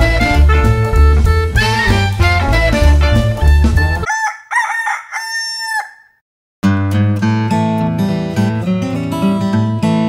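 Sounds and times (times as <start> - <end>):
rooster crowing: 4.0 - 6.2.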